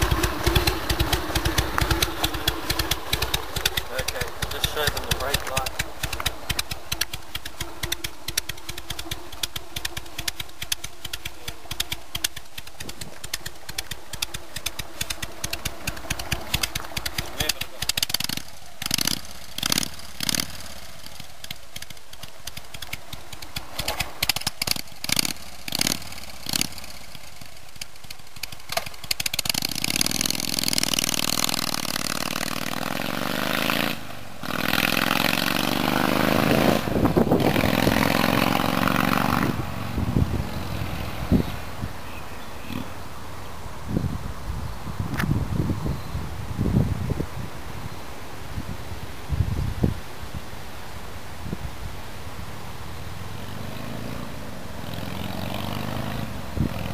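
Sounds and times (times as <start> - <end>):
motorcycle engine: 0.0 - 47.3, 50.6 - 56.9.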